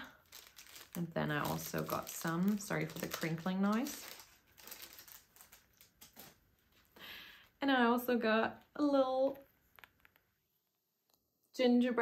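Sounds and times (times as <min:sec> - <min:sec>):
packaging crinkling: 0:00.0 - 0:06.9.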